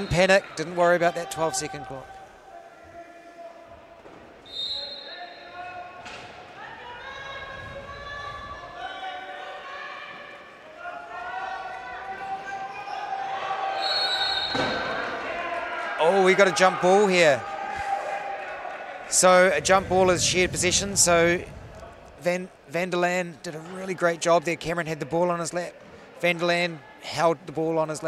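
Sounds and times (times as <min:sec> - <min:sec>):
referee's whistle blasts: 0:04.4 - 0:05.6, 0:13.8 - 0:15.0.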